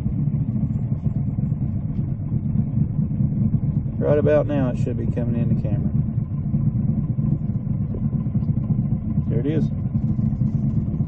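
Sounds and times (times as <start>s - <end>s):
boat engine running: 0.0s - 11.0s.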